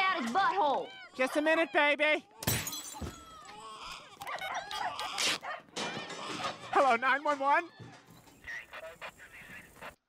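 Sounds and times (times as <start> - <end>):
dog whimpering and yelping: 4.2 - 5.6.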